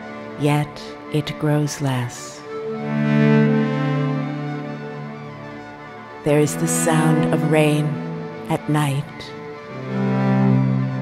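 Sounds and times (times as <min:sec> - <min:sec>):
slow cello music: 0:00.0 - 0:11.0.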